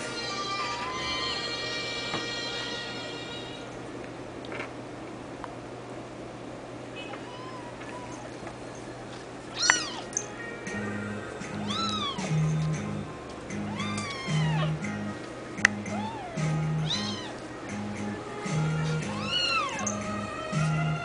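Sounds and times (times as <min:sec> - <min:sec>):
kitten meowing: 0:07.0 - 0:08.4, 0:09.5 - 0:10.2, 0:11.6 - 0:12.4, 0:13.6 - 0:14.8, 0:15.9 - 0:17.4, 0:19.1 - 0:20.0
background music with low bass: 0:10.3 - 0:21.0.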